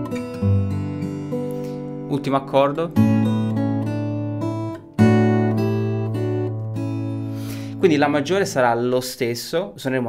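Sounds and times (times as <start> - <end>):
fingerstyle acoustic guitar: 0.0 - 8.6.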